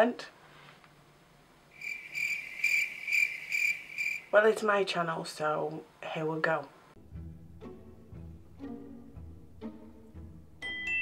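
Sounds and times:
crickets chirping: 0:01.7 - 0:04.4.

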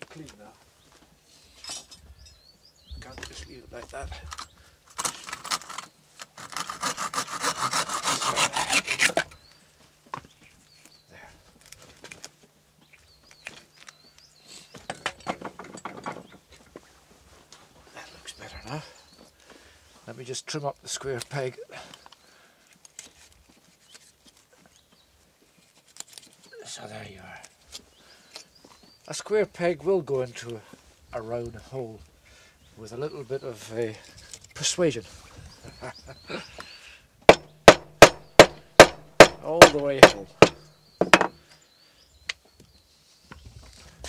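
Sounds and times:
knife scraping wood: 0:05.0 - 0:09.4
bow saw cutting wood: 0:06.4 - 0:09.4.

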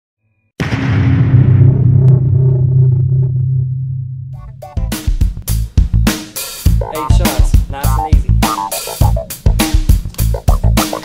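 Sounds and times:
deep cinematic boom: 0:00.6 - 0:06.0.

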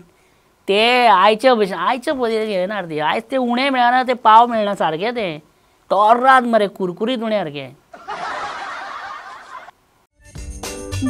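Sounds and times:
laugh track crowd laughter: 0:08.0 - 0:09.7.

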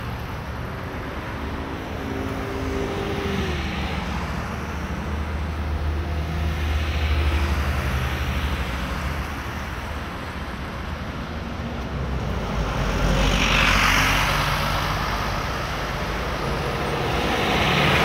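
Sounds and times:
traffic engine rumble: 0:00.0 - 0:18.0.

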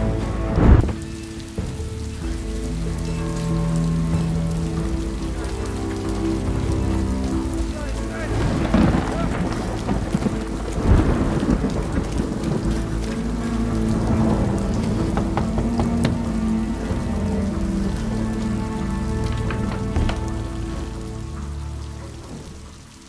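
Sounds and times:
held low musical tones: 0:00.0 - 0:23.0
steady rain: 0:00.0 - 0:23.0
thunder rumbling: 0:00.0 - 0:23.0.

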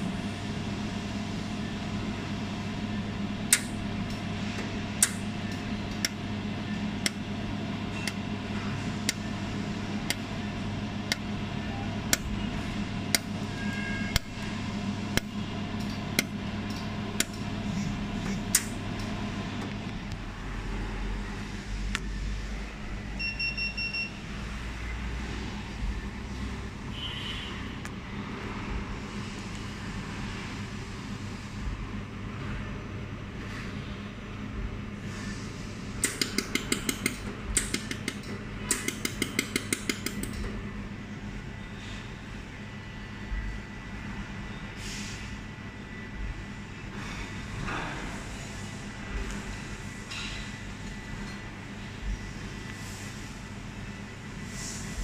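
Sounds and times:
welding machine hum: 0:00.0 - 0:21.8, 0:34.3 - 0:43.9
welder sharp clicks: 0:05.0 - 0:05.2, 0:36.0 - 0:40.4
electronic beeps: 0:23.2 - 0:24.2.

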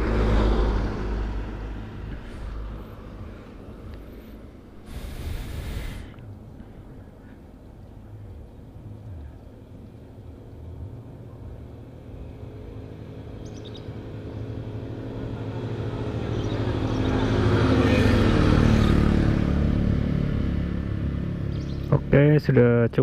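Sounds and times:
vehicle engine passing by: 0:00.0 - 0:06.2, 0:10.4 - 0:22.7.

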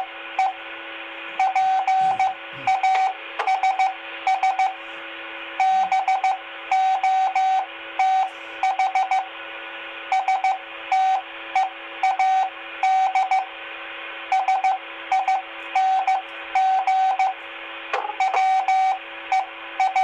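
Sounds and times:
faint hum and hiss: 0:00.0 - 0:20.0
morse code beeps: 0:01.4 - 0:04.8, 0:14.4 - 0:17.4, 0:18.0 - 0:20.0.

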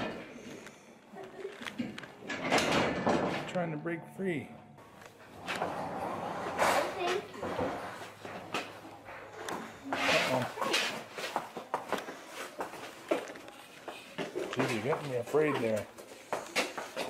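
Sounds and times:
horse hooves clopping on floor: 0:11.2 - 0:17.0.

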